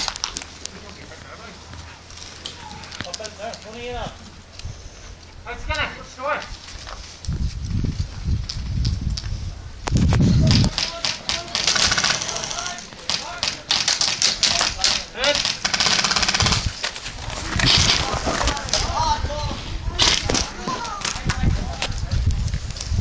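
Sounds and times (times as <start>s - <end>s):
people shouting: 2.4s - 3.0s
airsoft guns firing bursts: 10.4s - 16.8s.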